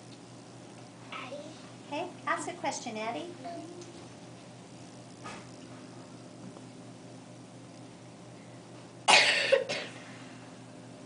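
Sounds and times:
person coughing: 9.1s - 10.0s.

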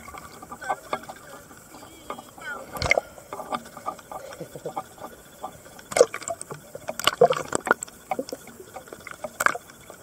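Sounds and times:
sea water lapping and splashing: 0.0s - 10.0s.

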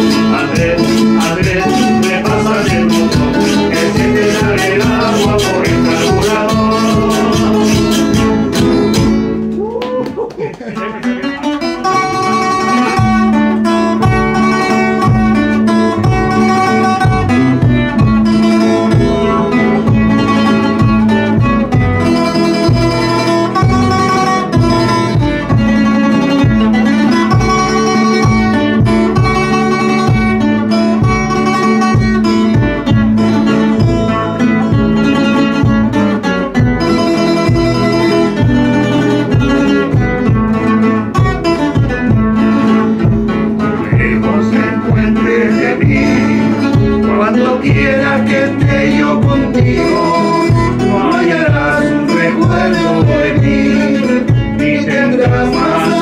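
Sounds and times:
classical guitars playing: 0.0s - 9.8s, 10.4s - 56.0s.

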